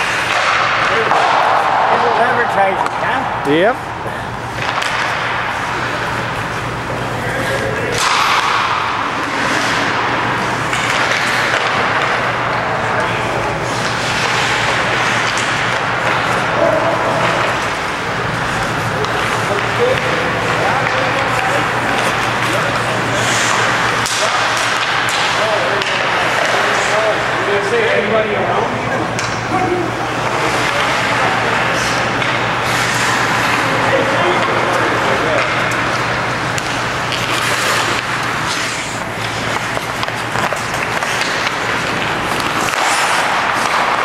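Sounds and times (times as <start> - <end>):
steady low hum: 0.0 - 44.0
sticks and puck clacking: 0.0 - 44.0
skate blades scraping ice: 4.4 - 12.6, 13.2 - 27.9, 30.1 - 44.0.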